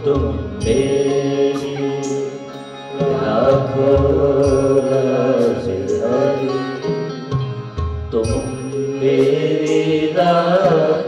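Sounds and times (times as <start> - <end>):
people singing devotional song: 0.0 - 6.9, 8.2 - 11.0
harmonium chords: 0.0 - 11.0.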